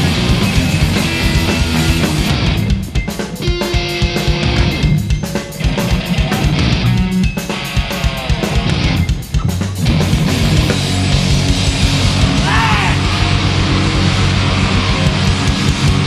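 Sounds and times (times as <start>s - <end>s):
electric guitar: 0.0s - 16.0s
fast drum kit beat: 0.0s - 16.0s.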